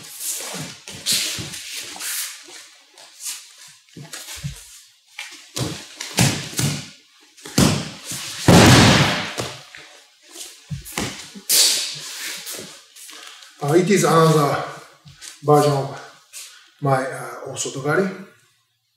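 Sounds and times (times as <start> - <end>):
bare feet shuffling on mats: 0.0 - 16.6
body thudding onto mat: 7.5 - 9.6.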